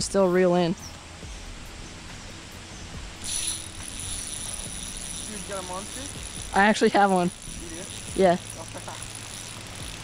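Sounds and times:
fishing reel ratcheting: 3.2 - 10.0.

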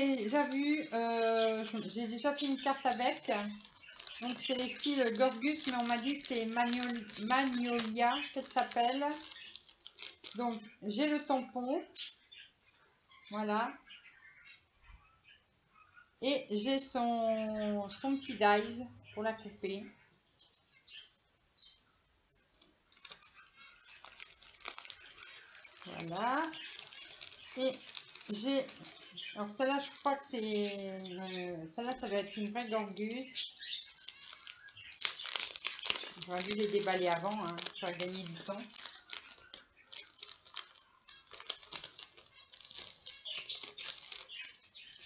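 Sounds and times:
plastic packaging crinkling: 0.0 - 12.2, 22.5 - 45.0.

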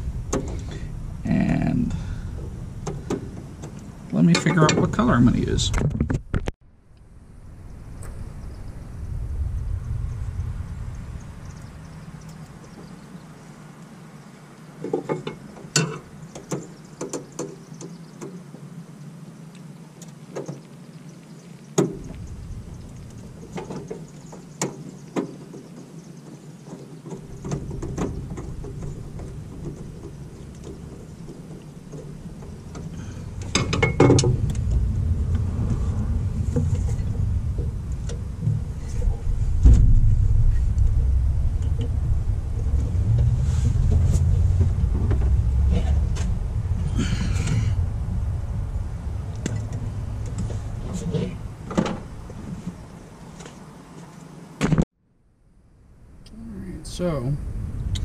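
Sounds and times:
steady low rumble: 0.0 - 13.8, 21.6 - 24.6, 27.2 - 53.4, 55.2 - 58.0
handling noise: 20.0 - 48.3.

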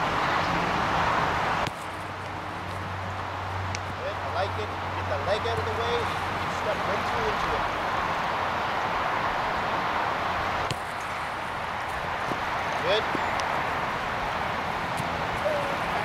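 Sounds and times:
outdoor background hiss: 0.0 - 16.0.

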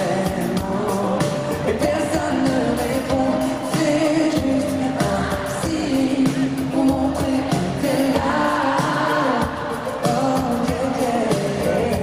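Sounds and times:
drums and backing instruments: 0.0 - 12.0
man singing into a microphone: 0.0 - 12.0.

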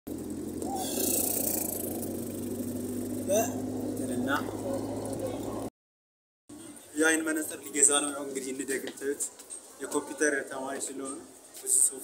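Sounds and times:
car engine hum: 0.1 - 5.7
road noise: 0.1 - 5.7.

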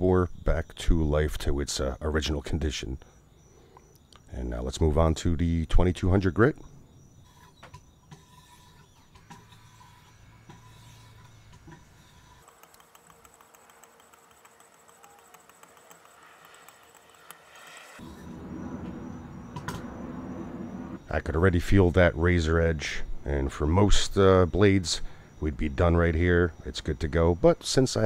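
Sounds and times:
stone scraping knife edge: 7.2 - 18.2.

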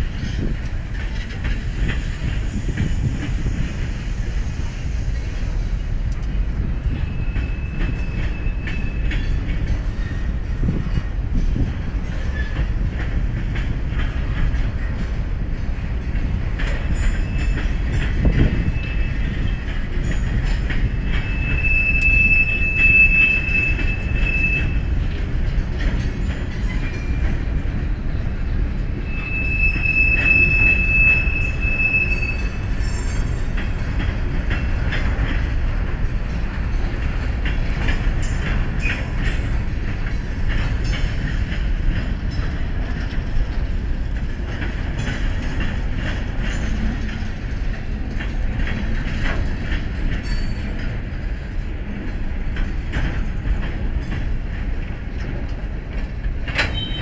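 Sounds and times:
train wheels rumbling on rails: 0.0 - 57.0
train wheels squealing: 0.1 - 12.8, 16.6 - 43.8, 44.5 - 51.8, 56.5 - 57.0.

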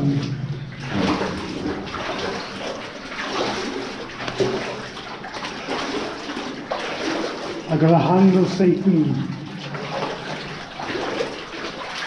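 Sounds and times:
wading through water: 0.0 - 12.0.

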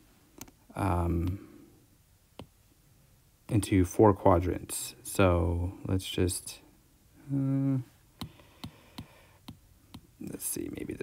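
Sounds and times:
stylus tapping on glass screen: 8.2 - 10.1.

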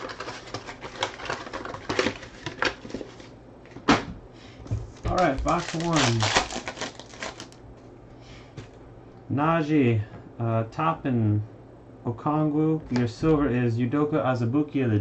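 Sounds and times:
card packs crinkling and clicking: 0.0 - 3.9, 5.0 - 7.6
man talking: 5.1 - 6.4, 9.3 - 15.0.

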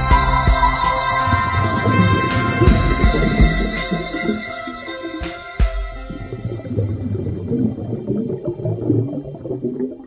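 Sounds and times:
water bubbling and gurgling: 1.2 - 5.3, 6.1 - 10.0.

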